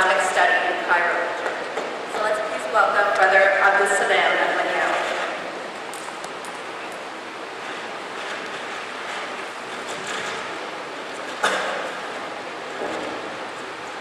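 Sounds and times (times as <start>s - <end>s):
room noise hiss: 0.0s - 14.0s.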